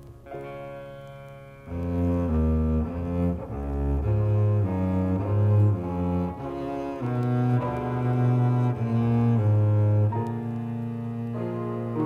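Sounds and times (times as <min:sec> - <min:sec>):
bowed double bass: 0:00.0 - 0:12.0.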